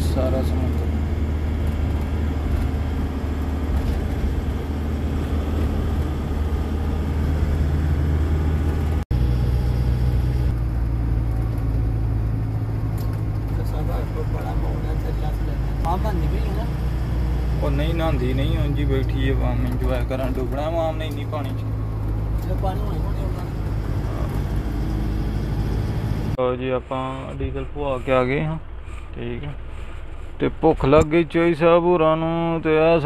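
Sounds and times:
road noise: 0.0 - 33.0
truck engine droning: 0.0 - 33.0.

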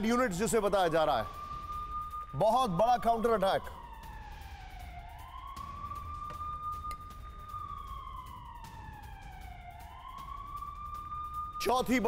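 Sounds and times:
siren wailing: 0.0 - 12.0.

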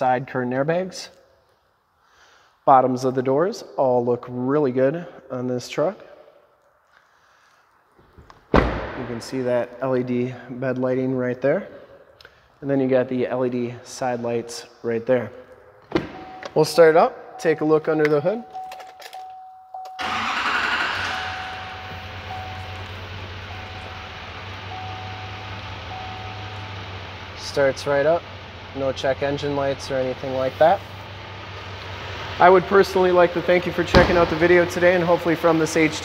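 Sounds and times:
diesel engine starting and idling: 19.8 - 36.0
steady warning tone: 20.9 - 33.2.

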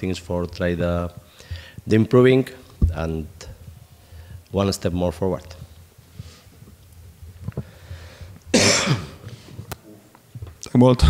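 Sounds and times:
person coughing: 8.5 - 9.2.

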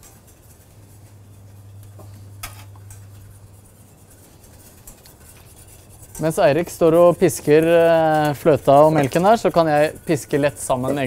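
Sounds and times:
whisk stirring in saucepan: 0.0 - 11.0
whisk clinking against pan: 2.4 - 11.0.

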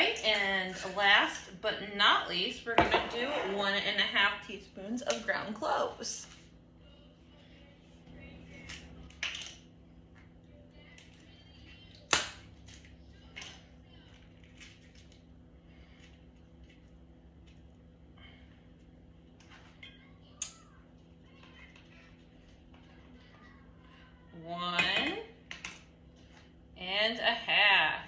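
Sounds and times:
faint steady hum: 0.0 - 28.0.

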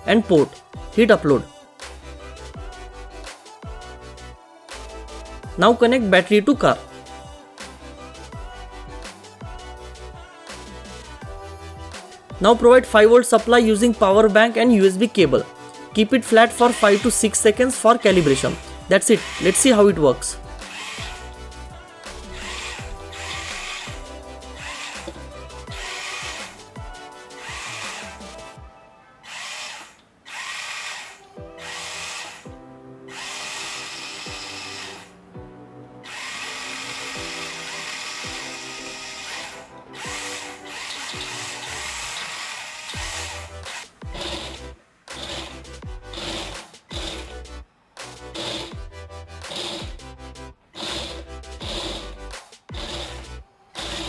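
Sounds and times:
background music: 0.0 - 54.0
small gear motors whirring: 17.9 - 19.7, 20.6 - 21.3, 22.1 - 26.7, 27.4 - 28.6, 29.2 - 32.4, 33.1 - 35.2, 36.1 - 47.4, 48.4 - 48.8, 49.4 - 50.0, 50.8 - 54.0.

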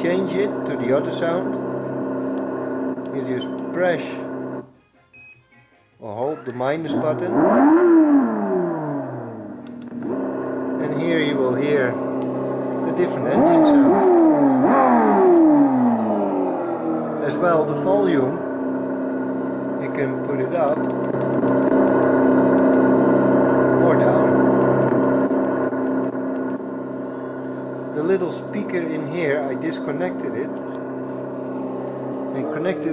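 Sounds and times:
simulated engine winding down: 0.0 - 4.6, 6.9 - 32.9
simulated engine idling: 7.3 - 32.9.

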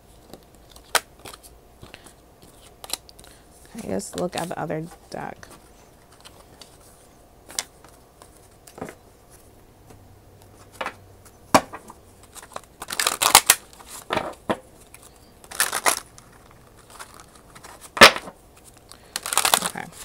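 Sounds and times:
cards being shuffled: 0.2 - 11.0, 11.6 - 20.0.

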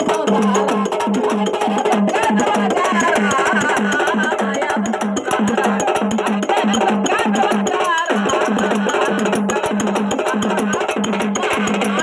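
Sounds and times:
drum beating: 0.0 - 12.0
fast clicking percussion: 0.0 - 12.0
person singing: 0.0 - 12.0.

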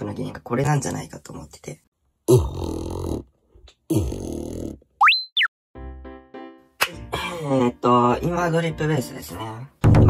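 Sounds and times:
sliding cartoon whistle: 5.0 - 5.5.

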